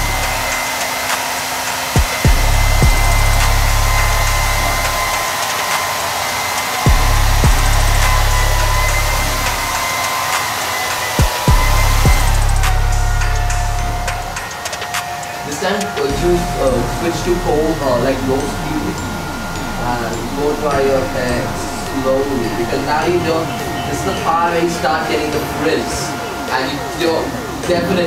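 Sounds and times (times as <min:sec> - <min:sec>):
hair dryer blowing: 0:00.0 - 0:27.8
low thumps: 0:02.0 - 0:05.3, 0:06.9 - 0:09.8, 0:11.2 - 0:14.4
low rumble: 0:02.3 - 0:05.3, 0:06.9 - 0:09.8, 0:11.5 - 0:14.4, 0:16.1 - 0:23.8.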